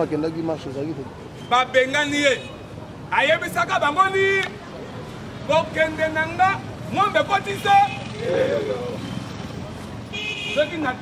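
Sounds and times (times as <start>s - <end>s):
man speaking loudly: 0.0s - 4.6s, 5.4s - 9.0s
street noise: 0.0s - 11.0s.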